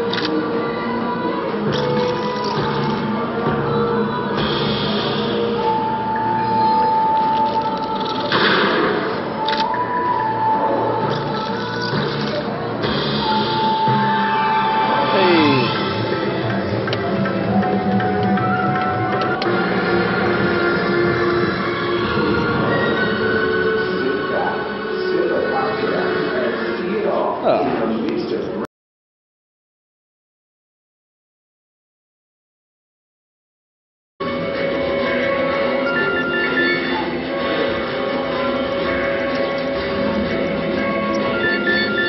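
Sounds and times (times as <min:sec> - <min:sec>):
slot machine music and tones: 0:35.0 - 0:42.0.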